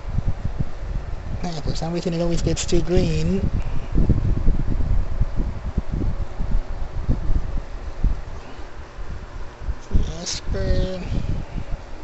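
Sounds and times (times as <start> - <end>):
microphone handling rumble: 0.0 - 12.0.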